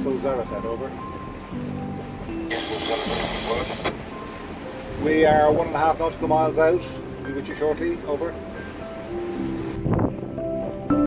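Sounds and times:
soft background music: 0.0 - 11.0
voice crackling through radio: 2.5 - 3.9
radio hiss: 2.5 - 4.0
radio squelch cutoff: 2.5 - 4.0.

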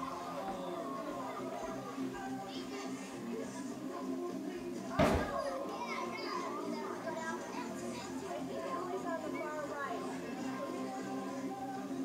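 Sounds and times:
background music: 0.0 - 12.0
children chattering: 0.0 - 12.0.

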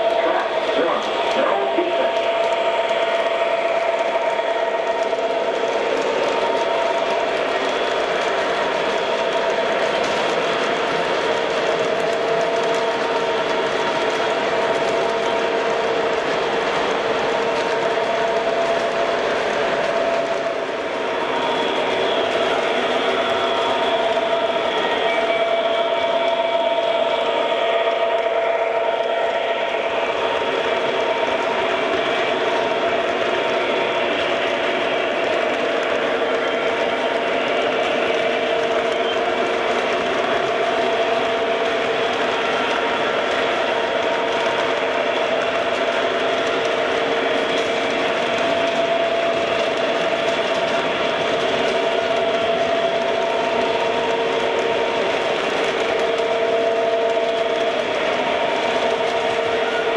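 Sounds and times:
model train motor running: 0.0 - 59.9
steady whine: 0.0 - 59.9.

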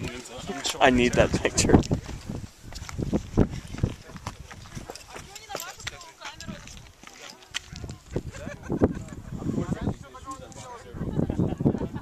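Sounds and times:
footsteps on rock: 0.2 - 8.1
voices talking: 3.7 - 12.0.

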